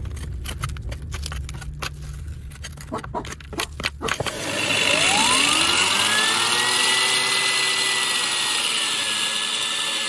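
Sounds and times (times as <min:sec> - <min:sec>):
steady low hum: 0:00.0 - 0:05.6.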